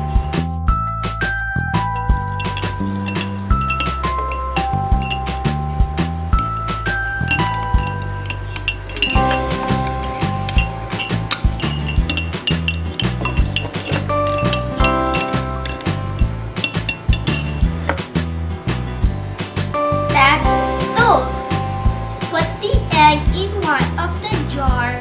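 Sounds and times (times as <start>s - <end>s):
background music: 0.0s - 25.0s
metal spoon clinking glass jar: 1.8s - 5.6s, 6.3s - 18.1s.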